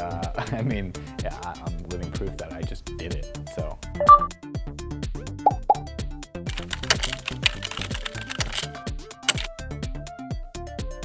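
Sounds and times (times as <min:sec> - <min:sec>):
electronic music with steady beat: 0:04.0 - 0:04.3, 0:05.5 - 0:06.0
keyboard typing clatter: 0:06.5 - 0:09.6.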